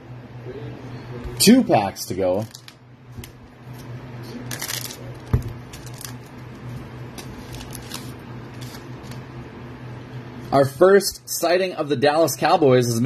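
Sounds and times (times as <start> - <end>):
steady low hum: 0.0 - 13.0
wrapper and cards rustling: 2.4 - 2.8, 4.5 - 6.3, 7.1 - 9.3
scissors cutting foil: 4.5 - 5.0, 5.7 - 6.3, 7.2 - 9.2.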